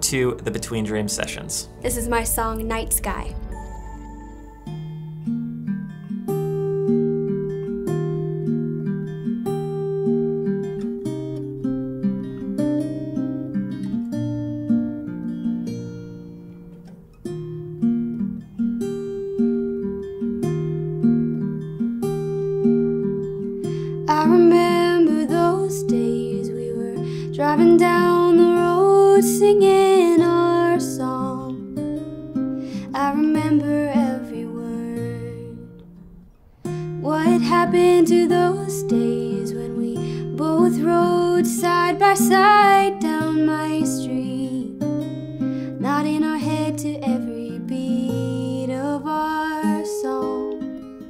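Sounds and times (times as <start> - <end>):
acoustic guitar plucked notes: 0.0 - 51.0
woman singing: 1.8 - 5.3, 23.9 - 31.7, 32.8 - 35.9, 36.8 - 45.0, 45.8 - 50.9.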